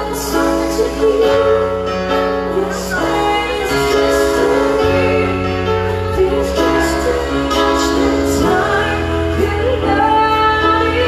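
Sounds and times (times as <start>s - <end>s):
live band playing chords: 0.0s - 11.0s
woman singing: 0.0s - 11.0s.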